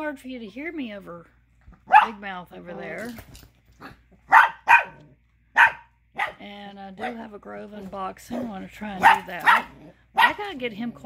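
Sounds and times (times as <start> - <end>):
puppy barking: 1.9 - 2.2, 3.9 - 6.4, 7.0 - 7.3, 8.3 - 10.5.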